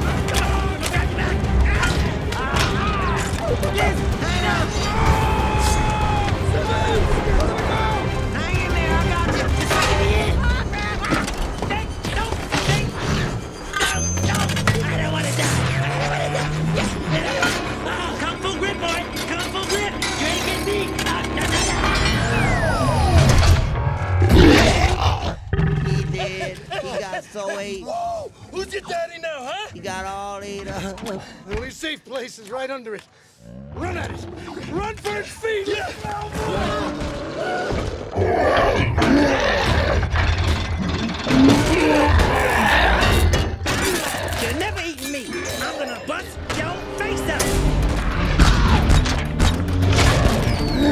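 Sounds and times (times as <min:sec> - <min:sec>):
film score music: 0:00.0 - 0:31.8, 0:32.9 - 0:50.9
robot shouting: 0:13.8 - 0:26.8, 0:50.2 - 0:50.9
deep mechanical rumble: 0:46.4 - 0:50.9
rattling debris: 0:46.4 - 0:50.9
sharp impacts: 0:46.4 - 0:50.9
descending whistling tone: 0:50.4 - 0:50.9.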